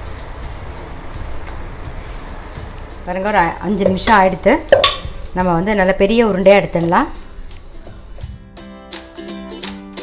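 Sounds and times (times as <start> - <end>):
woman talking: 3.0 - 7.2
metal bowl knocking on wood: 3.8 - 5.3.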